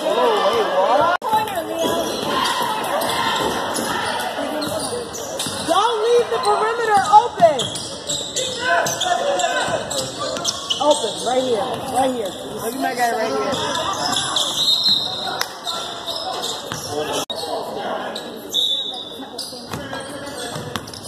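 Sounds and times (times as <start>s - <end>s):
voices calling out: 0.0s - 20.7s.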